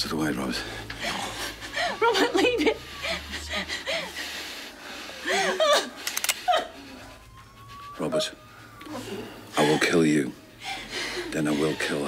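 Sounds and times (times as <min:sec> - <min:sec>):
woman sobbing and whimpering: 0:00.9 - 0:12.0.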